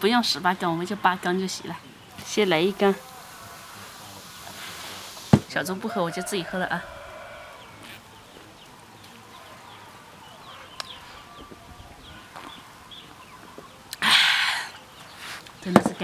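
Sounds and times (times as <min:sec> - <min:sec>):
chickens clucking: 0:00.0 - 0:16.0.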